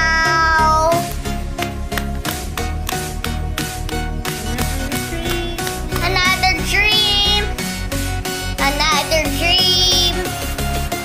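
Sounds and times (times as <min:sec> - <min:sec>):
karaoke backing track: 0:00.0 - 0:11.0.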